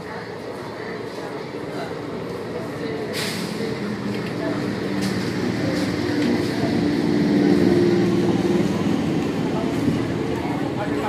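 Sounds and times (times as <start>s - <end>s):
train motor hum: 0.0s - 11.0s
train wheels rumbling on rails: 0.0s - 11.0s.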